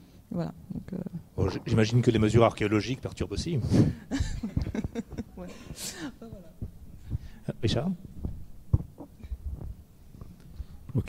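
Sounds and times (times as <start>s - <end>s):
microphone handling thumps: 3.6s - 10.4s.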